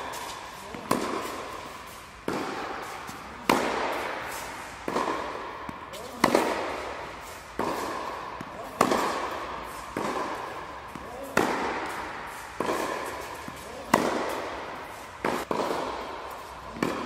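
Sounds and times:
tennis ball hit by racket: 0.0s - 17.0s.

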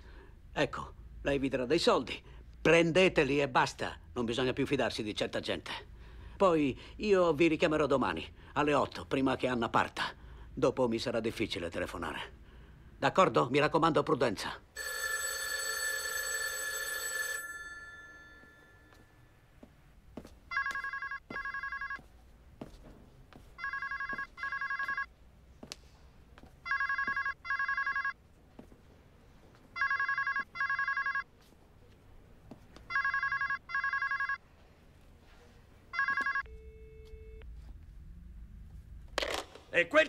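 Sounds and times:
telephone ringing: 14.8s - 19.2s, 20.5s - 22.1s, 23.6s - 25.2s, 26.6s - 28.2s, 29.7s - 31.3s, 32.9s - 34.4s, 35.9s - 37.4s.

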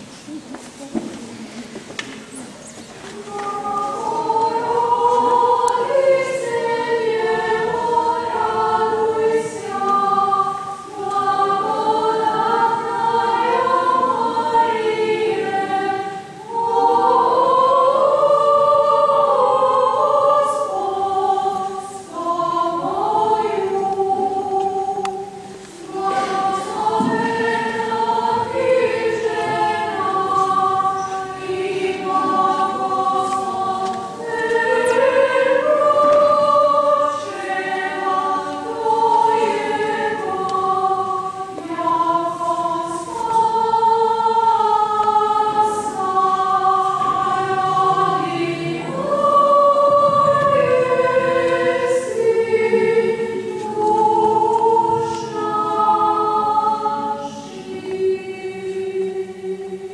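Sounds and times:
mixed choir singing unaccompanied: 2.1s - 59.9s.

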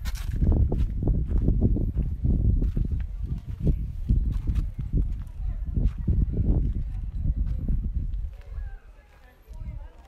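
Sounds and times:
footsteps crunching on gravel: 0.0s - 10.0s.

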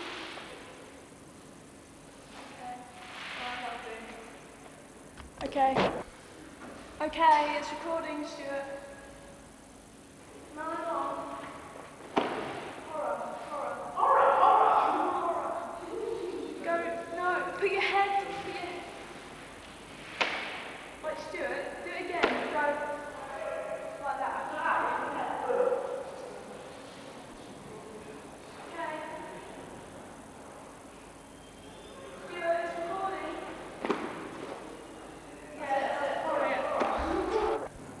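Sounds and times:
voices: 2.4s - 6.1s, 34.6s - 37.7s.

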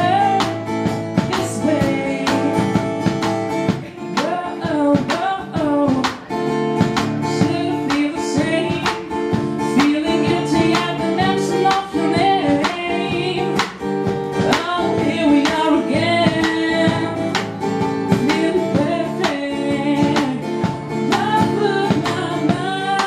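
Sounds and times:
strummed acoustic guitar: 0.0s - 23.0s
woman singing into microphone: 0.0s - 23.0s.

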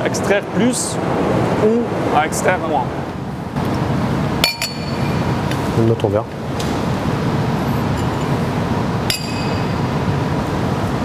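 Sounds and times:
wine glass clinking: 4.4s - 5.3s, 7.8s - 8.4s, 9.0s - 9.8s.

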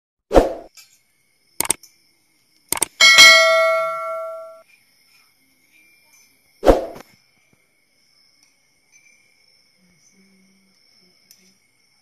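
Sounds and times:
quick double click: 1.6s - 1.8s, 2.7s - 3.0s
bright bell ding: 3.0s - 4.6s.

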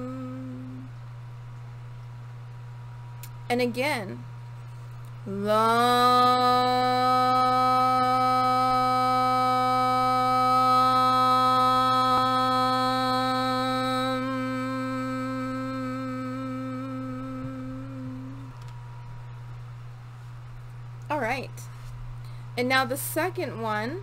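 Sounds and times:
woman humming a steady tone: 0.0s - 1.5s, 4.9s - 19.4s.

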